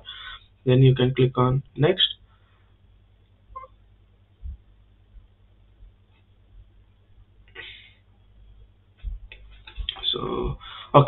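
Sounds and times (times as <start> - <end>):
low thumps: 4.3 - 6.8, 9.0 - 10.0.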